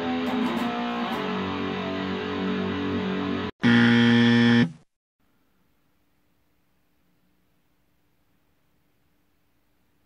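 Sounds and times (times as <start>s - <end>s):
electric guitar metal riff: 0.0s - 4.7s
loud buzzing tone: 3.3s - 4.9s.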